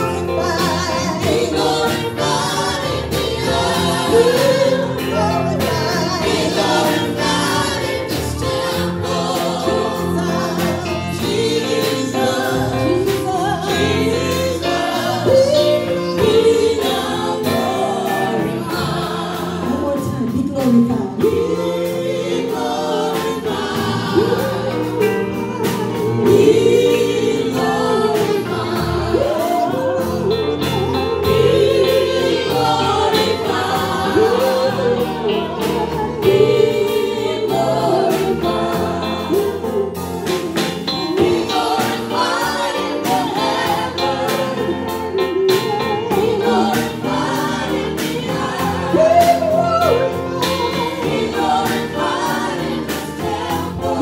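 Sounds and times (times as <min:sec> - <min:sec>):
vocal group singing in harmony: 0:00.0 - 0:54.0.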